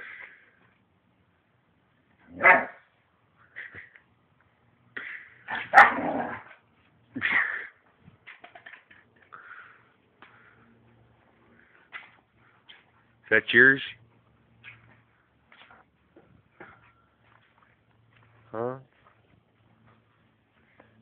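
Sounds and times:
dog barking and yipping: 2.3 - 2.8, 5.5 - 6.5.

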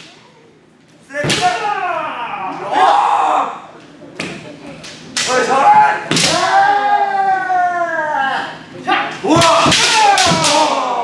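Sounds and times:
bamboo sword strikes: 9.4 - 10.8.

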